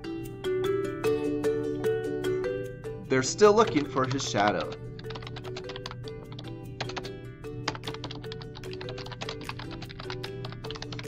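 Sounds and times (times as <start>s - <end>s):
background music: 0.0s - 11.0s
keyboard typing: 3.6s - 11.0s.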